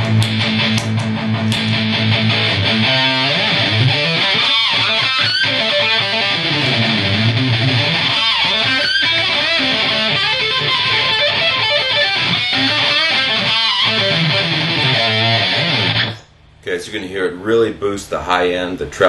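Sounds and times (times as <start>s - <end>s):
distorted electric guitar: 0.0s - 16.4s.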